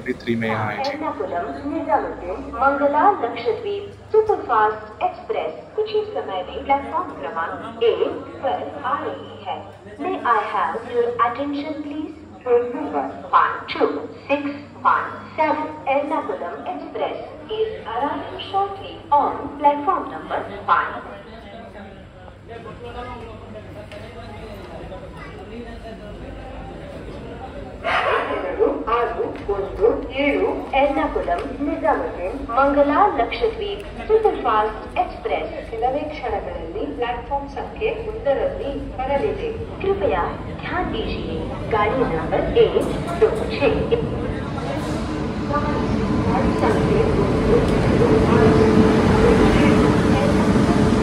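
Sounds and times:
loudspeaker announcement: 0.0s - 1.1s, 32.0s - 51.0s
woman's voice announcement: 0.0s - 21.1s, 27.9s - 44.3s, 45.4s - 51.0s.

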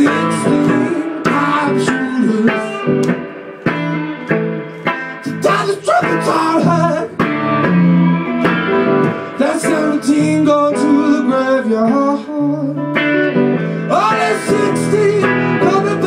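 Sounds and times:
man singing: 0.0s - 4.3s, 5.0s - 7.6s, 9.1s - 13.0s, 13.6s - 16.0s
electric guitar blues rhythm: 0.0s - 16.0s.

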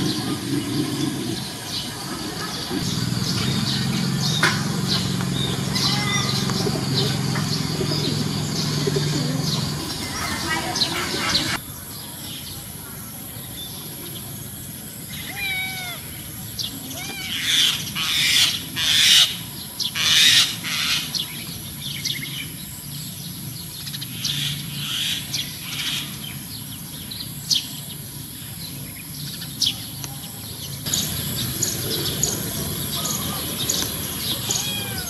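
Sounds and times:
loud harsh bird calls: 0.0s - 11.6s, 15.1s - 21.4s, 30.6s - 35.0s
birds calling and chirping: 0.0s - 35.0s.

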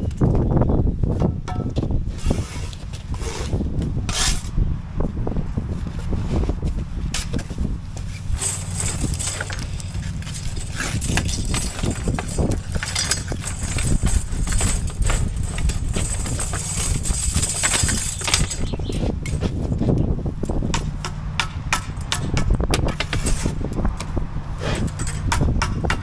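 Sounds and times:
trowels knocking and scraping blocks: 8.1s - 19.6s.

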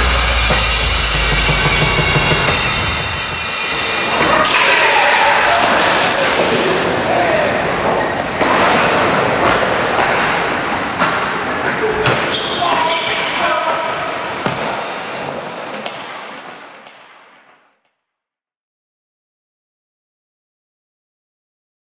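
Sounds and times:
noisy hubbub: 0.0s - 16.8s
excited shouting and whooping: 4.0s - 7.8s.

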